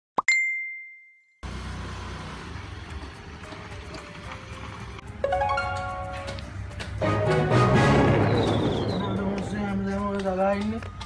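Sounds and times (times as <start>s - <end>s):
bright bell-like ding: 0.3s - 1.2s
outdoor noise: 1.3s - 11.0s
scooter engine running: 1.4s - 7.1s
rising pop: 7.7s - 10.3s.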